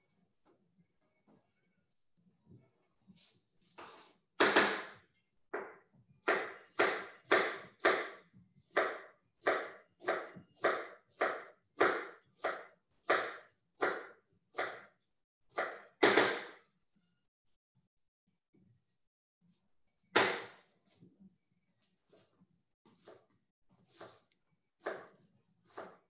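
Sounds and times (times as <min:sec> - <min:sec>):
knife chopping on cutting board: 0:24.8 - 0:26.0.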